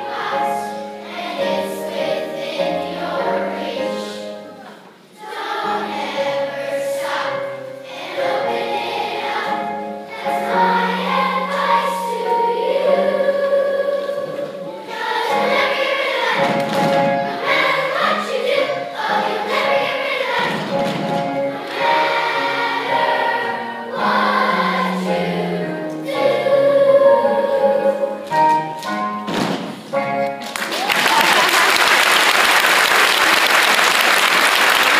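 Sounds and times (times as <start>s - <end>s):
children's choir singing: 0.0s - 30.7s.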